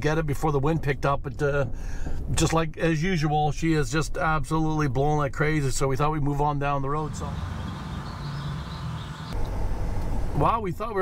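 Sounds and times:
vehicle rumble from inside cab: 7.0s - 11.0s.

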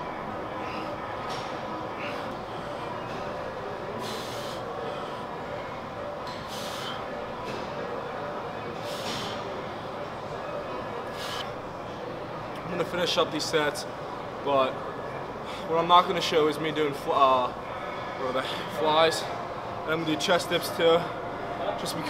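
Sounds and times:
busy gym background din: 0.0s - 22.0s
breathy hisses: 4.0s - 5.3s, 6.4s - 7.1s.

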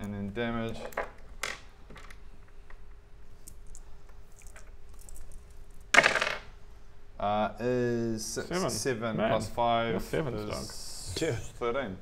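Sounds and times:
dice rattling and rolling on wood: 5.1s - 6.5s.

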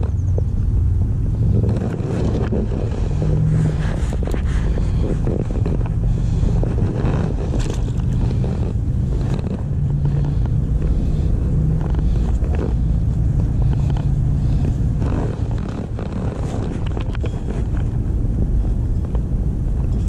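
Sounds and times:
low engine-like drone: 0.0s - 20.0s
rope rustling and scraping: 1.4s - 20.0s.

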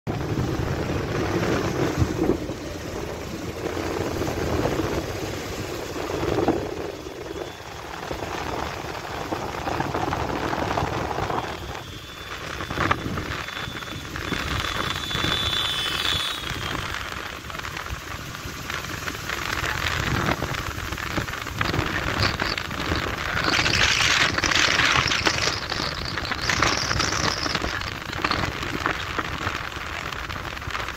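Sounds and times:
road noise from moving vehicle: 0.0s - 30.9s
wind buffeting microphone: 0.1s - 30.9s.

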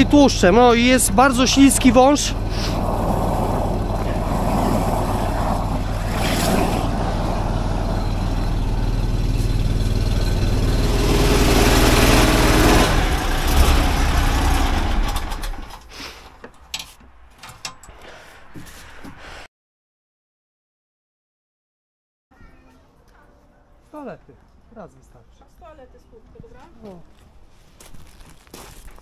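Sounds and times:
engine and pressure pump running: 0.0s - 15.9s.

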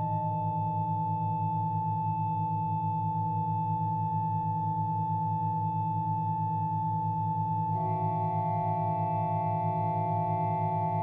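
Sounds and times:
organ holding a sustained chord: 7.7s - 11.0s.

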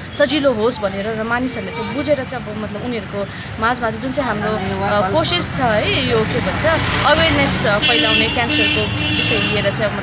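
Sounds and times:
street traffic: 0.0s - 10.0s
woman talking: 0.0s - 10.0s.

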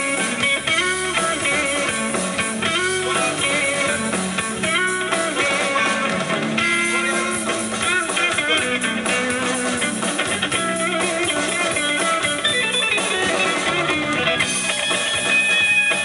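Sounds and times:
bass guitar: 0.0s - 16.0s
drum kit: 0.0s - 16.0s
electric guitar melody: 0.0s - 16.0s.

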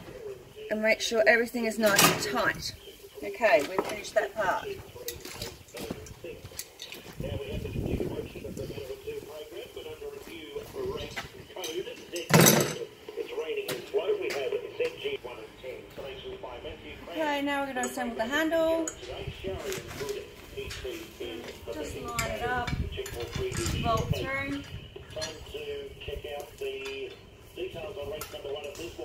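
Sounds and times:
background talk: 0.0s - 29.0s
metal cart parts clattering: 11.7s - 12.8s.

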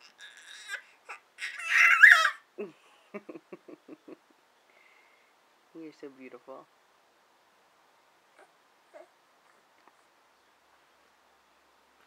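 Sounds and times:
baby squealing: 0.0s - 2.4s.

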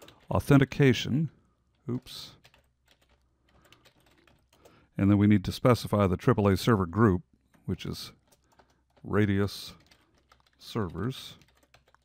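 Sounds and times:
keyboard typing: 0.0s - 0.9s, 1.7s - 4.8s, 7.6s - 12.0s.

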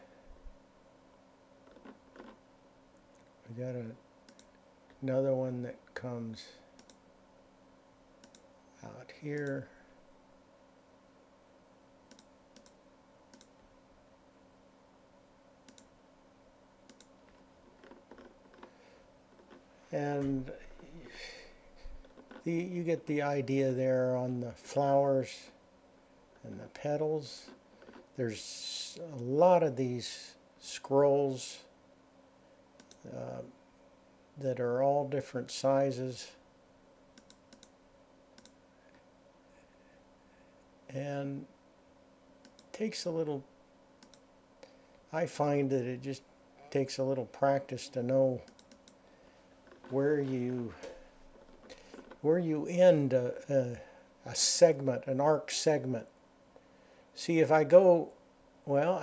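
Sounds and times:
faint steady hum: 0.0s - 59.0s
computer mouse clicks: 4.3s - 4.6s, 6.8s - 7.0s, 8.2s - 8.5s, 12.1s - 13.6s, 15.7s - 15.9s, 16.9s - 18.7s, 32.8s - 33.0s, 37.2s - 37.8s, 38.4s - 38.6s, 42.4s - 42.7s, 44.0s - 44.2s, 48.5s - 49.0s.

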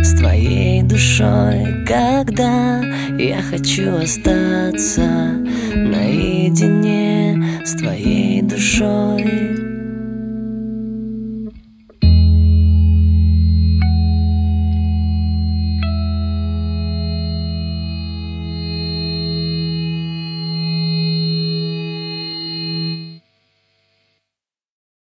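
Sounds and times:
guitar chord with chorus effect: 0.0s - 23.2s
single guitar notes: 0.0s - 23.2s.

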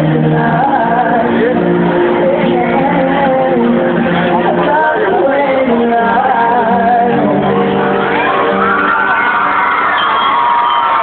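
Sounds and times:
person singing: 0.0s - 8.0s.

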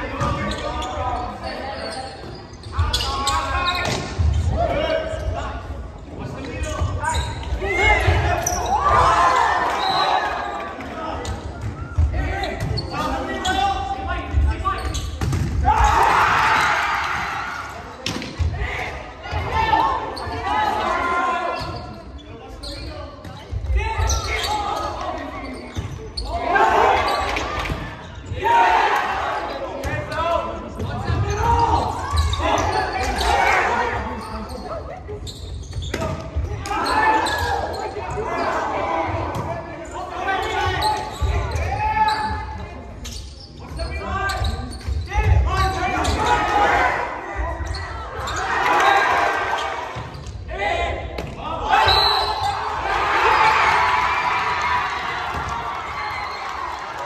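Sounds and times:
people shouting and talking: 0.0s - 57.0s.

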